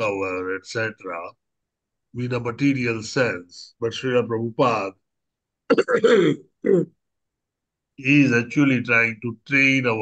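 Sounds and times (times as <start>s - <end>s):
man clearing his throat: 5.7s - 7.0s.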